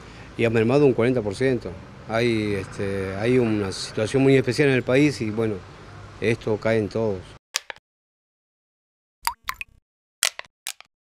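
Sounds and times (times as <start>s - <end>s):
cartoon water-drop plops: 9.2s - 10.9s.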